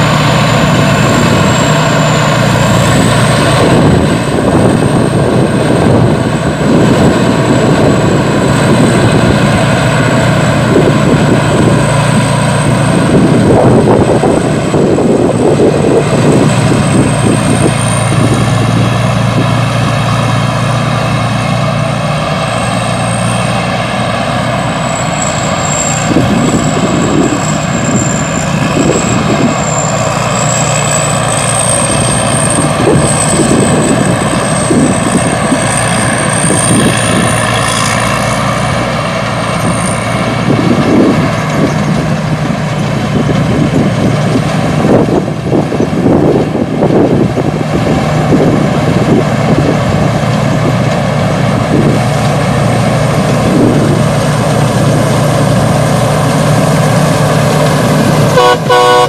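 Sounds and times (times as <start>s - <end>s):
combine harvester engine drone: 0.0s - 59.0s.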